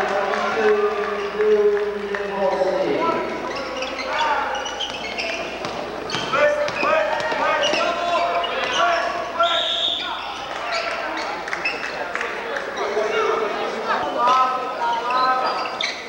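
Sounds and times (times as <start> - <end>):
crowd voices: 0.0 - 16.0
sneakers squeaking on floor: 2.4 - 12.0, 13.9 - 16.0.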